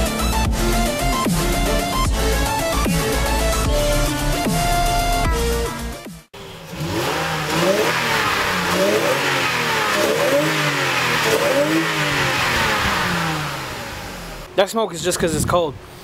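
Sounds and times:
car engine revving: 0:00.0 - 0:05.2, 0:06.3 - 0:14.6
electronic music: 0:00.0 - 0:06.3.

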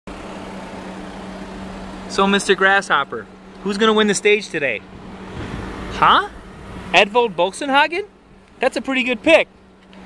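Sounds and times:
vehicle hum: 0:00.1 - 0:10.0.

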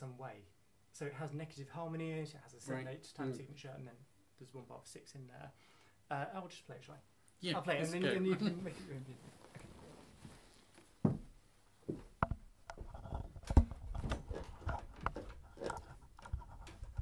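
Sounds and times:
footsteps: 0:08.7 - 0:17.0
knocks and handling noises: 0:11.9 - 0:17.0.

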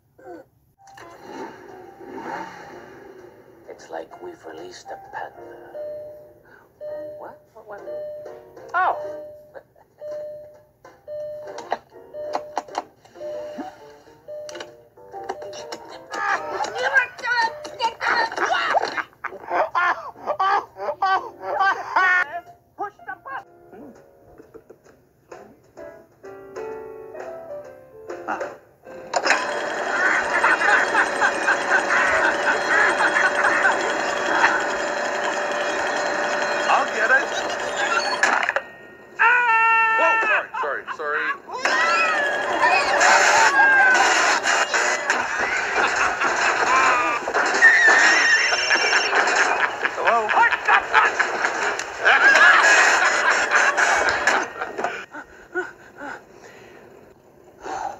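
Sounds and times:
cartoon voices: 0:41.2 - 0:45.0
cartoon sound effects: 0:41.5 - 0:45.6.

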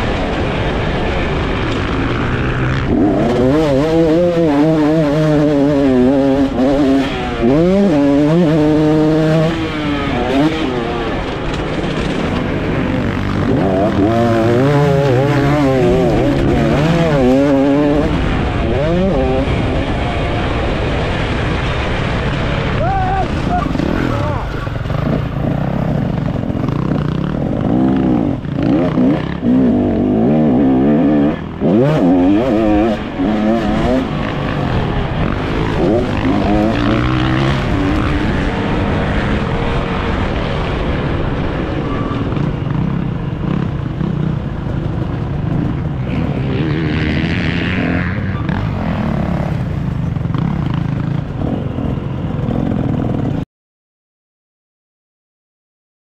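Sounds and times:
motorbike engine revving: 0:00.0 - 0:53.4.

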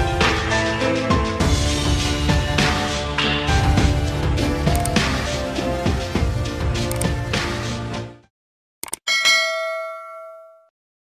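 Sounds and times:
bell-like ding chime: 0:09.1 - 0:10.7.

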